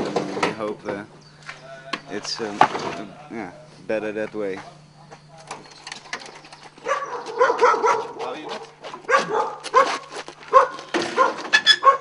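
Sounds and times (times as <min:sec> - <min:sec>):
dog yipping and barking: 0:06.8 - 0:08.2, 0:09.1 - 0:12.0.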